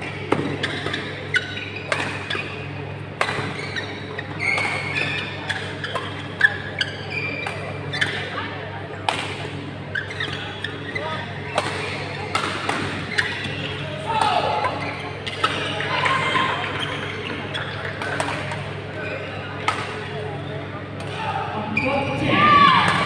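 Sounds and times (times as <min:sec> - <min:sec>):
rackets hitting shuttlecock: 0:00.2 - 0:03.7, 0:11.4 - 0:16.2, 0:17.3 - 0:18.7, 0:19.6 - 0:20.2.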